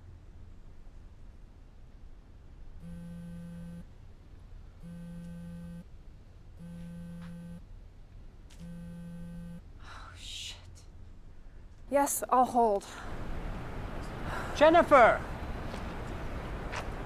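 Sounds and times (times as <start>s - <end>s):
low room hum: 0.0s - 17.0s
telephone ringing tone: 2.8s - 3.9s, 4.8s - 5.8s, 6.6s - 7.6s, 8.6s - 9.6s.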